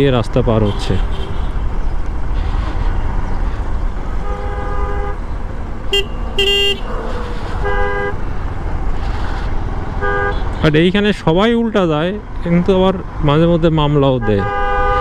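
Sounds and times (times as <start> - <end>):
vehicle horn honking: 4.2 - 5.2, 5.9 - 8.2, 10.0 - 10.6, 14.2 - 15.0.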